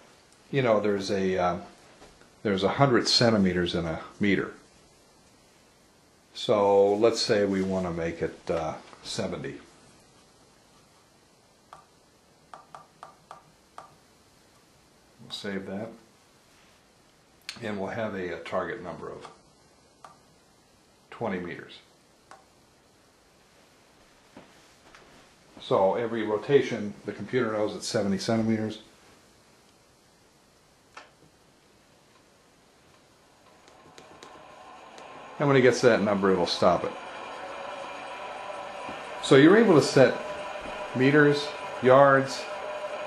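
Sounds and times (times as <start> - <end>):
skein winder motor whine: 33.2 - 43.0.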